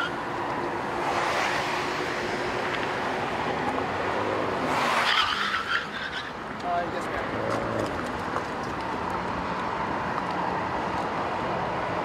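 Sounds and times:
passing cars tyre and road noise: 0:00.0 - 0:12.0.

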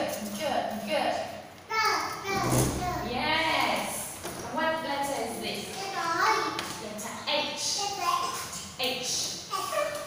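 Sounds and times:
young child's voice: 0:01.7 - 0:03.1, 0:05.7 - 0:06.6, 0:07.8 - 0:08.7, 0:09.5 - 0:10.0.

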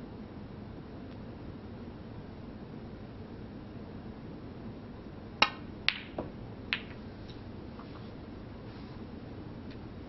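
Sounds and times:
snooker balls clicking and knocking: 0:05.4 - 0:07.0.

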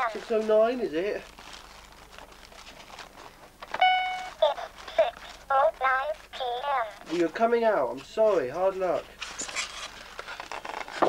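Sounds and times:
cardboard rustling and scraping: 0:00.0 - 0:11.0.

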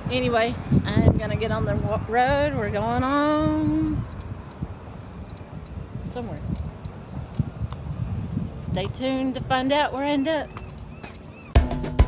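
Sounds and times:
outdoor background rumble: 0:00.0 - 0:11.7.

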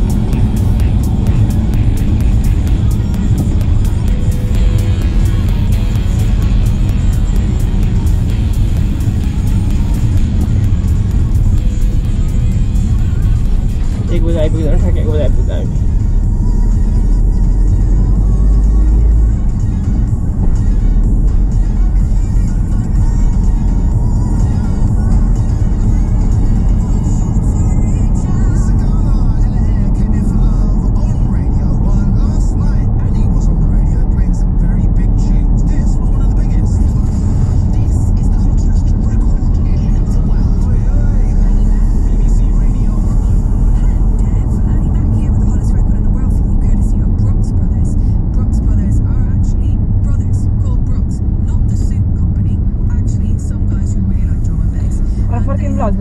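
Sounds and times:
car engine and tyres rumble: 0:00.0 - 0:56.0
music with vocals: 0:00.0 - 0:56.0.

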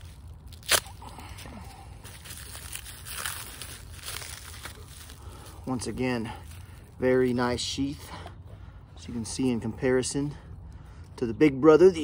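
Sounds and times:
knife slitting plastic wrap: 0:00.0 - 0:01.0
plastic wrap crinkling: 0:00.0 - 0:05.6.

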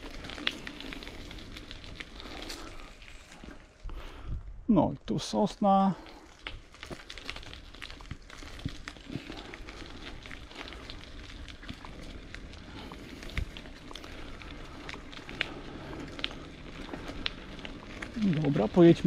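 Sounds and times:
small clicks and crackles: 0:00.0 - 0:04.3, 0:05.3 - 0:19.0
wheels rolling on dirt path: 0:00.0 - 0:19.0.

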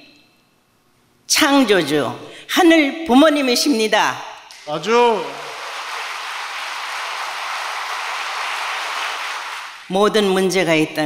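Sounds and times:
large audience applauding: 0:05.0 - 0:09.9.

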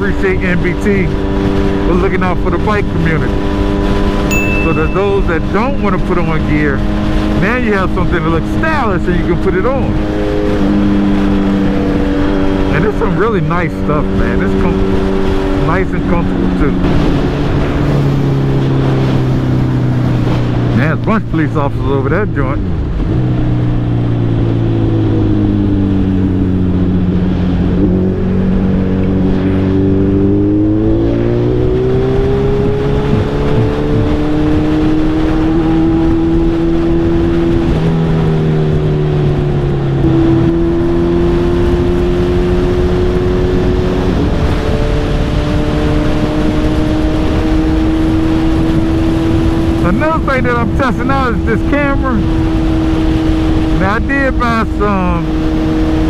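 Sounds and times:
motorcycle engine accelerating: 0:00.0 - 0:56.0
wind noise: 0:22.2 - 0:56.0.

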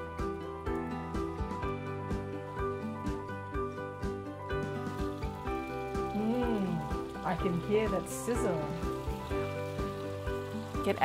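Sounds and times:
background music with soft beat: 0:00.0 - 0:11.0
fish frying in hot oil: 0:00.2 - 0:11.0.

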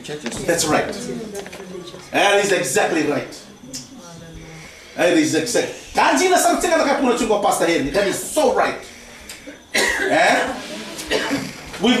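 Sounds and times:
person speaking: 0:00.0 - 0:08.8
person coughing: 0:09.7 - 0:11.7.

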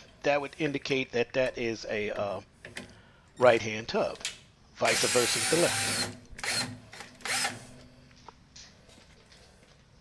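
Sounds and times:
power drill driving screw into wood: 0:04.9 - 0:07.6.

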